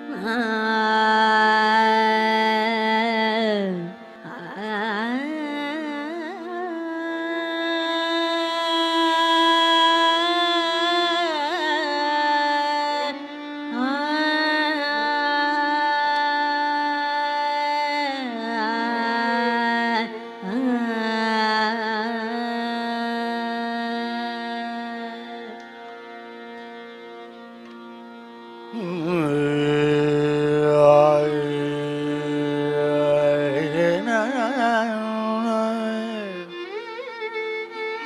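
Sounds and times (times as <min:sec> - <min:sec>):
man singing long held note: 0:28.7 - 0:36.6.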